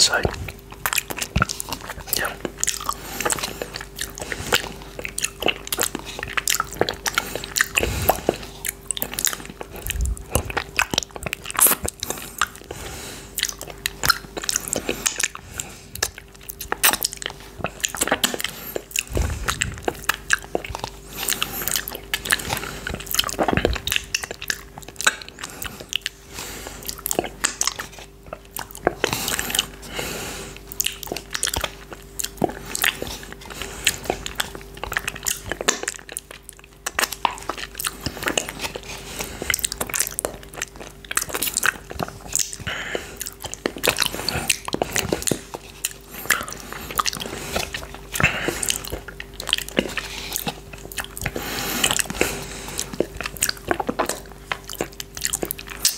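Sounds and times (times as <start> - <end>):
wet mouth smacks and sucks: 16.0 - 26.1.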